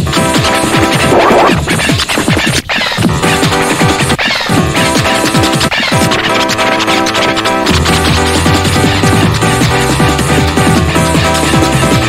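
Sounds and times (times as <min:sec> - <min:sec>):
hardcore rave music: 0:00.0 - 0:12.0
scratch-like noise burst: 0:00.1 - 0:12.0.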